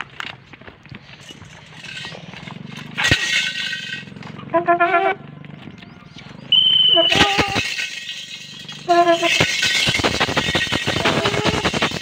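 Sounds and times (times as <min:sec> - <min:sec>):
clinking rattle: 0:01.1 - 0:04.5, 0:06.5 - 0:12.0
short whistle: 0:06.5 - 0:07.6.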